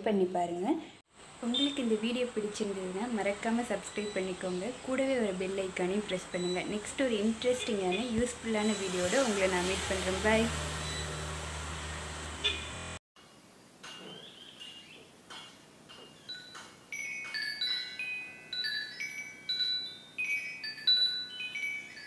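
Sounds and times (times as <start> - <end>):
metal wind chime ringing: 16.2 - 22.0.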